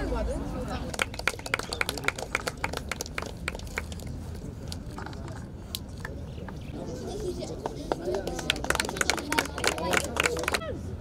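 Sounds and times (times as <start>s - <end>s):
low outdoor background: 0.0s - 11.0s
voices: 0.0s - 11.0s.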